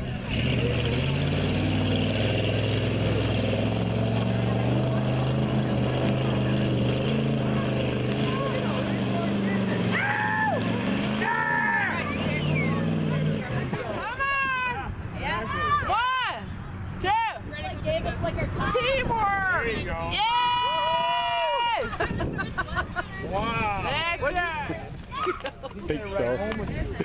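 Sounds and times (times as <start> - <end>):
suv engine revving high: 0.0 - 13.8
people shouting: 9.9 - 12.8, 14.0 - 16.4, 20.1 - 22.0.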